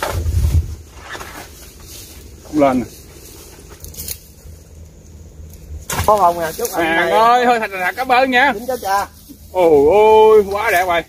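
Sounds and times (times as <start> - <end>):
wind rumbling on microphone: 0.0 - 1.1.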